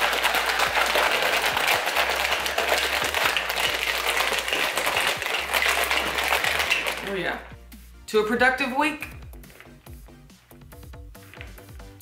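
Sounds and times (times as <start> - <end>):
plastic shaker bottle rattling: 0.0 - 7.5, 11.2 - 12.0.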